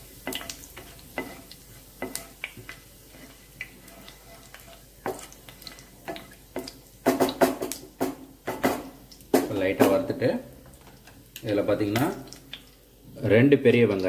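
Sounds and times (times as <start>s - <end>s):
spatula stirring against pan: 0.0s - 10.0s
spices crackling in hot oil: 0.0s - 14.0s.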